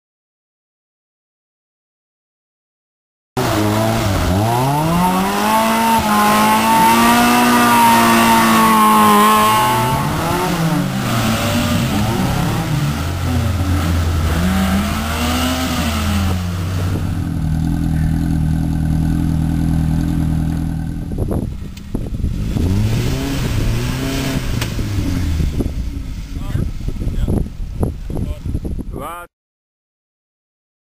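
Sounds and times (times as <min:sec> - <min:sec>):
car engine revving: 0:03.4 - 0:28.0.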